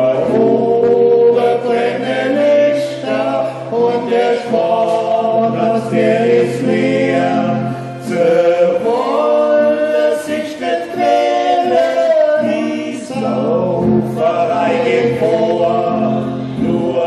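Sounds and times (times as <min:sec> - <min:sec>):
men singing together: 0:00.0 - 0:17.0.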